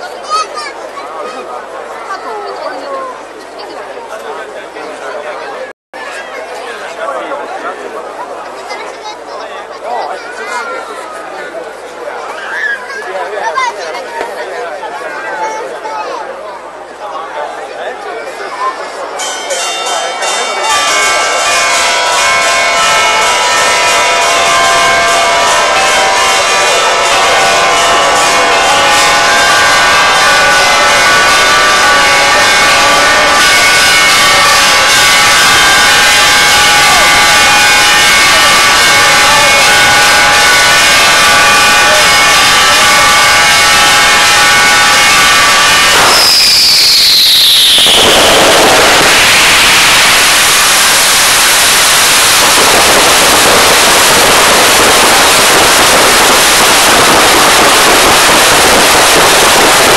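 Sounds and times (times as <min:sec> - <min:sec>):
crowd: 0:00.0 - 0:59.9
church bells pealing: 0:19.2 - 0:46.0
loud rush of noise: 0:20.8 - 0:59.9
firework whistling down: 0:44.4 - 0:59.9.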